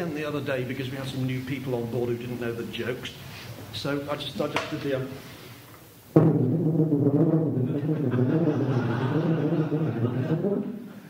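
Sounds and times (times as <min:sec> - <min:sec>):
tuba playing low notes: 0:06.0 - 0:10.9.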